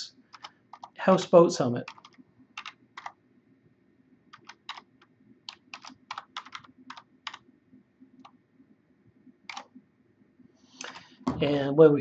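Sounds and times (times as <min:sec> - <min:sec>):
computer keyboard typing: 0:00.3 - 0:01.0, 0:01.8 - 0:03.2, 0:04.3 - 0:07.5, 0:09.5 - 0:09.7.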